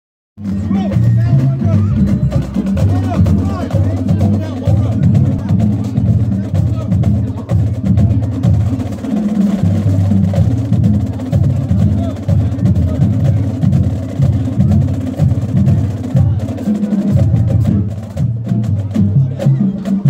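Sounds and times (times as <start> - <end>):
marching band playing: 0.4 - 20.0
marching drums and percussion: 0.4 - 20.0.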